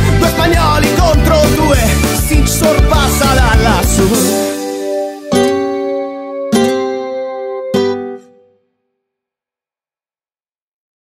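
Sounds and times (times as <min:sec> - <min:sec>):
acoustic guitar chords ringing: 0:00.0 - 0:08.8.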